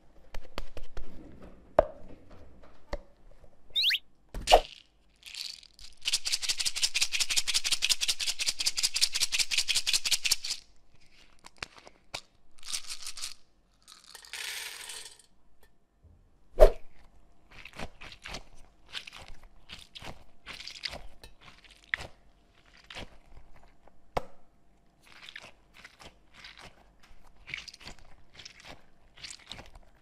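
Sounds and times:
rubber ball squeak: 3.8 - 4.0.

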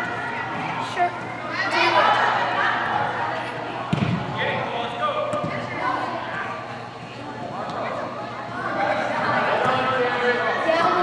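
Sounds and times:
soccer ball kick thud: 3.9 - 4.3, 5.3 - 5.6.

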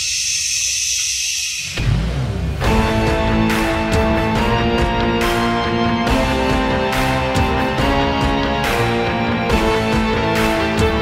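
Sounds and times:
music: 0.1 - 11.0.

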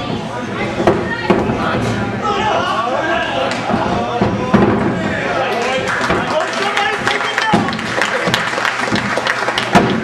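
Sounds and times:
loud voices: 0.0 - 10.0.

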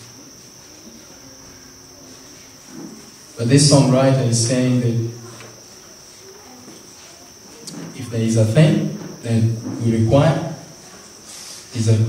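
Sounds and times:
faint high-pitched hum: 0.0 - 12.0
low room noise: 0.0 - 12.0.

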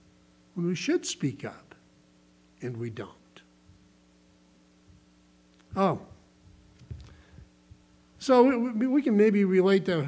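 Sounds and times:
faint electrical hum: 0.0 - 10.0
soft low thumps: 6.4 - 7.9.

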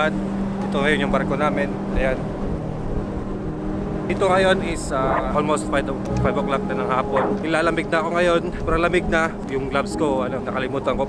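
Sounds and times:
low mechanical hum: 0.0 - 11.0
man speaking: 4.2 - 8.0.

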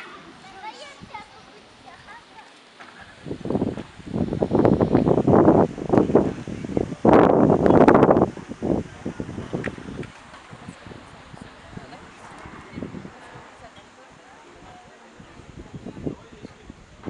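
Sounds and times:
rustling and buffeting on microphone: 0.0 - 17.0.

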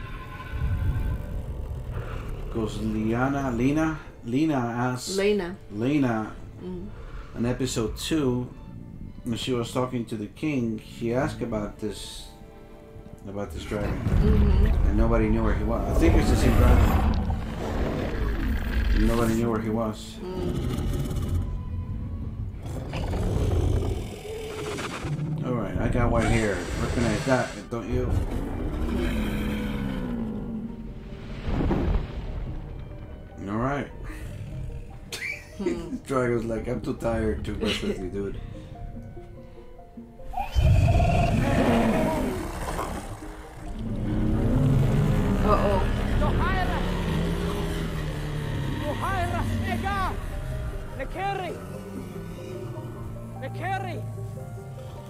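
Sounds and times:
dragon growling and breathing: 0.0 - 4.2, 13.8 - 19.4, 20.2 - 25.5, 26.1 - 31.5, 33.9 - 35.1, 40.4 - 53.4
brooding music score: 0.0 - 55.0.

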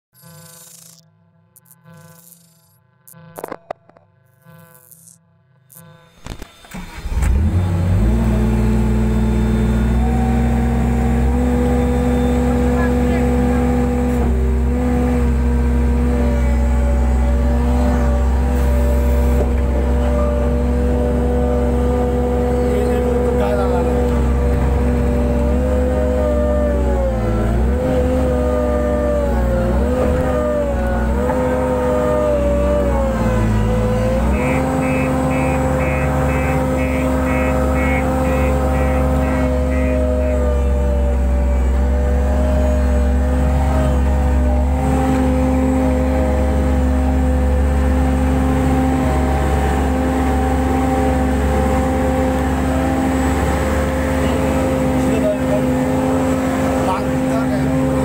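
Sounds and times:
diesel engine under load: 6.2 - 58.0.

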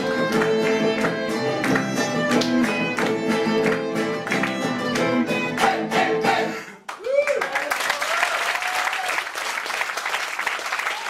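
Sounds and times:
violin melody: 0.0 - 6.3
strummed acoustic guitars: 0.0 - 6.6.

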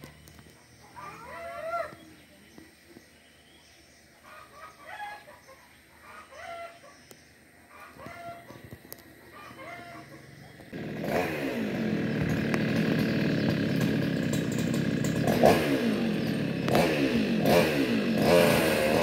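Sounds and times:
chickens clucking: 4.2 - 10.8
chainsaw revving: 10.5 - 19.0.

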